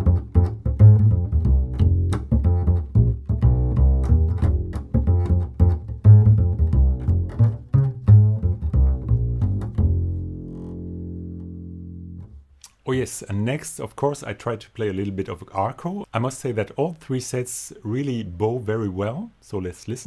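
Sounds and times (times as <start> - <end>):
double bass plucked funky line: 0.0 - 12.5.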